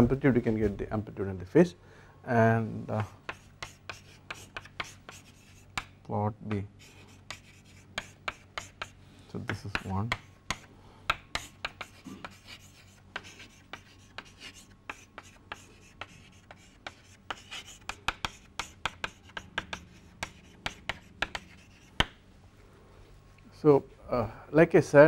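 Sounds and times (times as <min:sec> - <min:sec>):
chalk tapping and scratching: 0:03.0 - 0:22.2.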